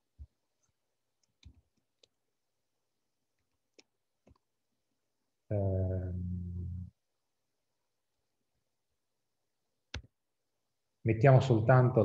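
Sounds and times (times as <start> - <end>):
keyboard and mouse clicks: 0.2 - 2.2, 3.4 - 4.5, 9.9 - 10.2.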